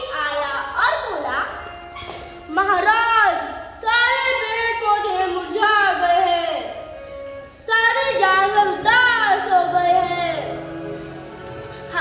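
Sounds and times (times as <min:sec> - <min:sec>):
child singing: 0:03.8 - 0:06.8, 0:07.6 - 0:10.6.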